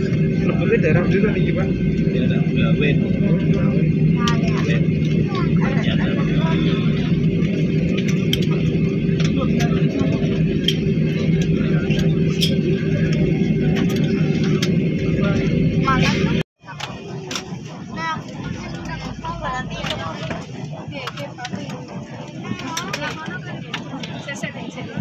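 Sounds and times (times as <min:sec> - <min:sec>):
jet engines droning: 0:00.0 - 0:25.0
passengers talking: 0:00.0 - 0:25.0.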